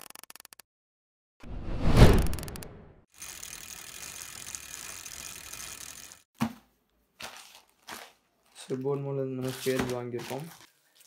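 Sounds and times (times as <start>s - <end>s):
mechanical ratcheting clicks: 3.2s - 6.2s.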